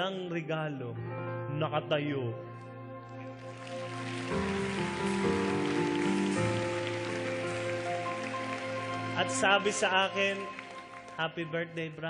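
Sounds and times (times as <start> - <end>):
sustained chords music: 2.4 - 12.0.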